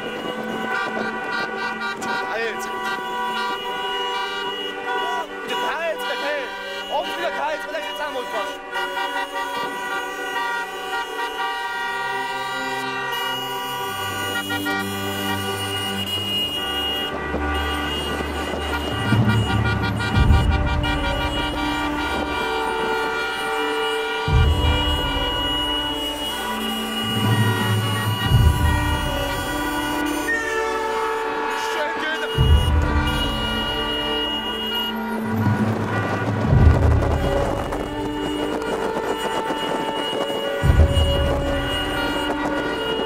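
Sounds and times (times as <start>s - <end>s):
car horns blaring: 0.0s - 43.0s
cars driving: 0.0s - 43.0s.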